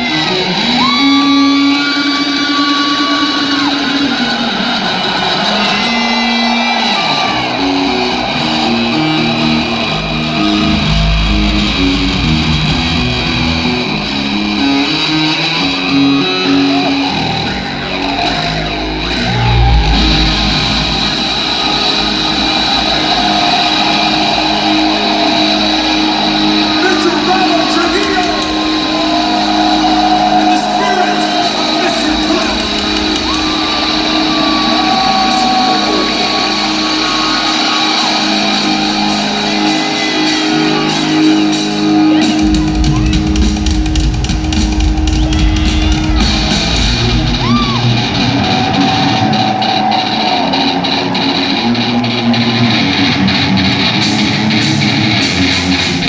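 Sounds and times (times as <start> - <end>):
crowd shouting and cheering: 0.0 - 56.0
heavier deeper bass part: 6.1 - 39.7, 40.4 - 56.0
distorted electric bass solo: 8.2 - 30.2, 42.0 - 48.7.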